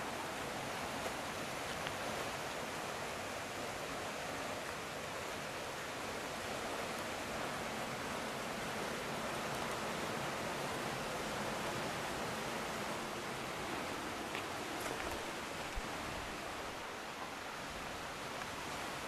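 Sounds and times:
water rushing through channel: 0.0s - 19.0s.

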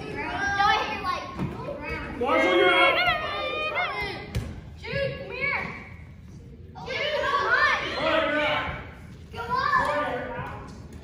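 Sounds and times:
children shouting: 1.8s - 4.3s, 6.8s - 8.6s.

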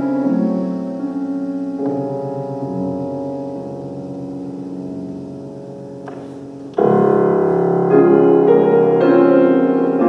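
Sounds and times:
piano soft chords: 0.0s - 10.0s.

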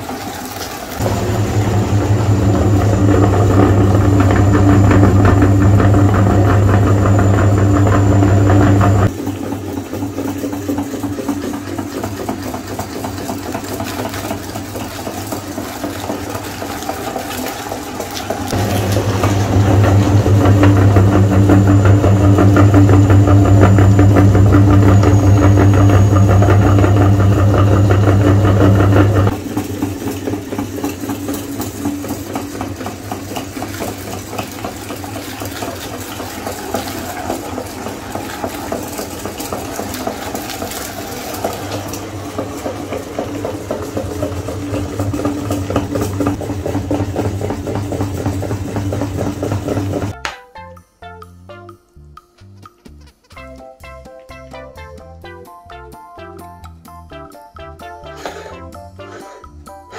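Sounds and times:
meat grinder humming: 0.0s - 50.2s, 58.1s - 59.9s.

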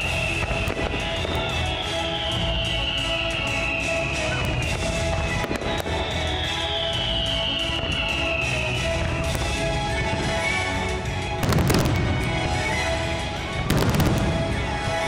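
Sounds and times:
fireworks popping and crackling: 0.0s - 15.0s
music: 0.0s - 15.0s.

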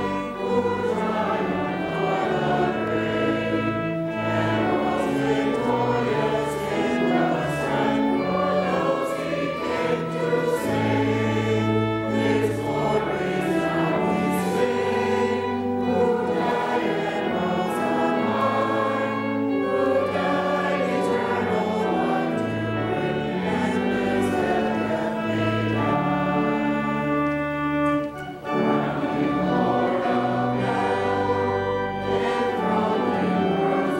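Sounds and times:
church choir singing: 0.0s - 33.9s.

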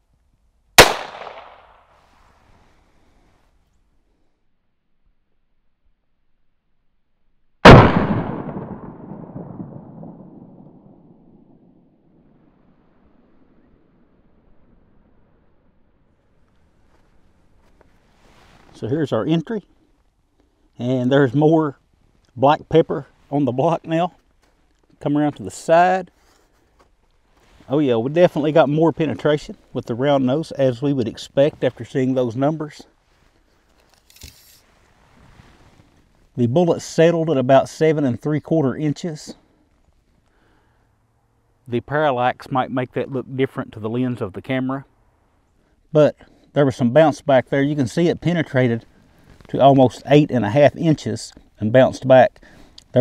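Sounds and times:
gunshot with long echo: 0.8s - 2.0s, 7.6s - 12.0s
faint rustle: 1.8s - 4.5s, 14.4s - 36.4s, 48.2s - 50.1s.

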